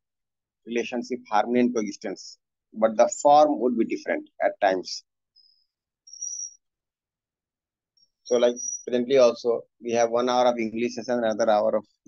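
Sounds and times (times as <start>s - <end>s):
thin high whistle: 6.1s - 6.6s.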